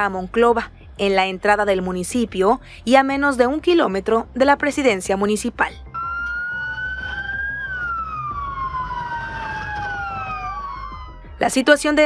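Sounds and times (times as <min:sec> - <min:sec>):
police sirens wailing: 0:06.0 - 0:12.0.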